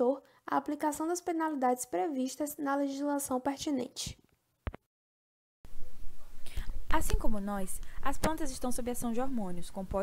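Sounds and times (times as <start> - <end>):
recording hiss and hum: 5.7 - 10.0.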